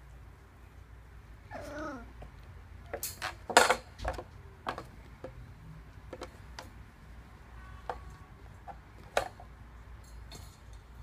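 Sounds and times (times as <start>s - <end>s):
puppy whining: 1.5s - 2.2s.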